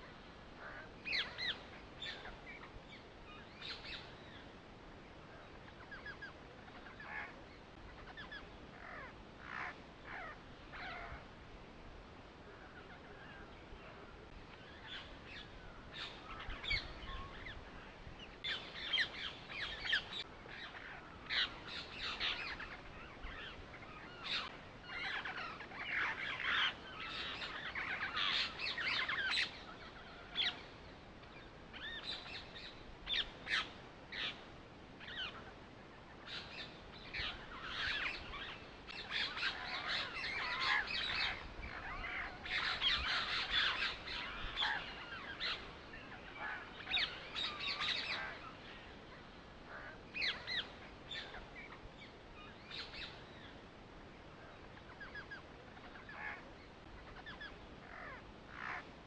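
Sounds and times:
birds chirping and calling: 0.0 - 4.6, 5.2 - 11.3, 12.5 - 53.6, 54.3 - 59.0.

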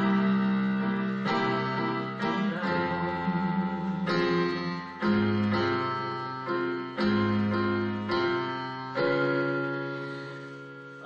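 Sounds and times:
electronic keyboard piano chords: 0.0 - 11.0.

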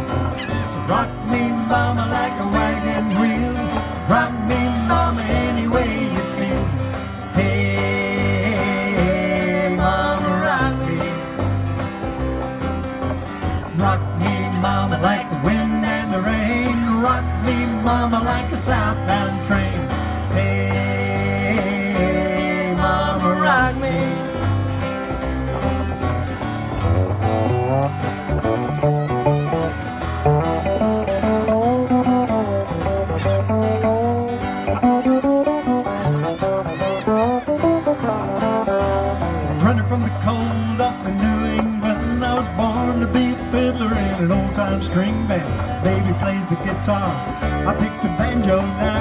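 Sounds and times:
acoustic guitar strumming: 0.0 - 49.0
sliding melody line: 0.0 - 49.0
upright bass line: 0.0 - 49.0.

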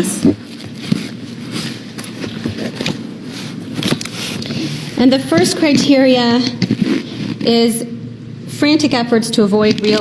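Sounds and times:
rustling handling noise: 0.4 - 6.0.

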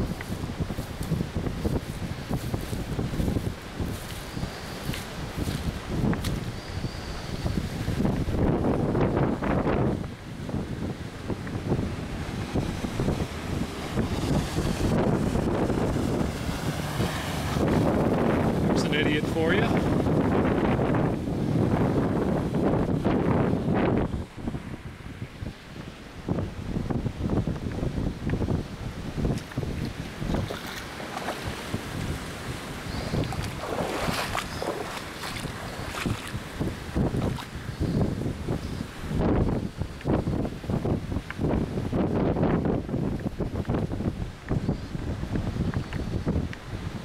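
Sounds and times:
wind buffeting microphone: 0.0 - 47.0
car splashing through floodwater: 10.5 - 27.4, 29.2 - 39.5.

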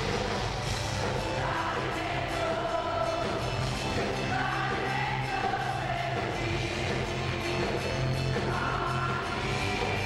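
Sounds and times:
live band playing: 0.0 - 10.0
voices singing together: 1.0 - 10.0.

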